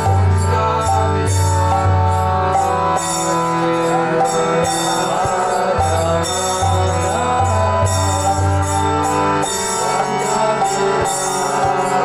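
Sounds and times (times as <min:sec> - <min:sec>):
harmonium holding chords: 0:00.0 - 0:12.0.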